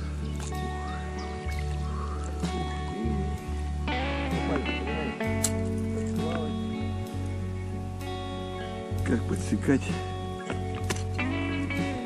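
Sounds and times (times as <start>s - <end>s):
background music with bass: 0.0s - 12.0s.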